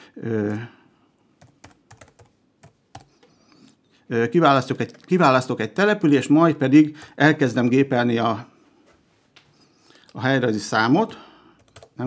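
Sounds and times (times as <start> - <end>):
faint computer keyboard typing: 1.4 - 3.5, 4.7 - 5.2, 11.0 - 12.0.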